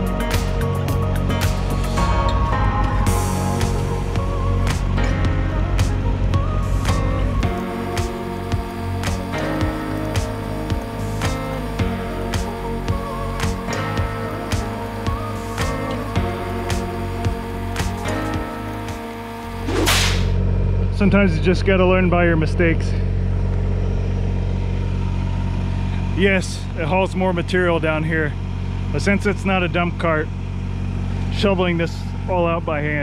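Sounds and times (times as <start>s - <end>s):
music with steady beat: 0.0s - 20.4s
tractor diesel engine humming: 0.0s - 33.0s
swoosh: 19.5s - 20.7s.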